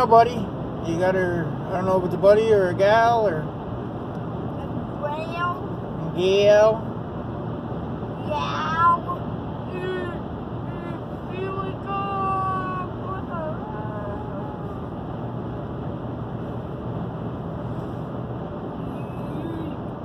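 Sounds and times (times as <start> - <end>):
road and tyre noise in car: 0.0 - 20.0.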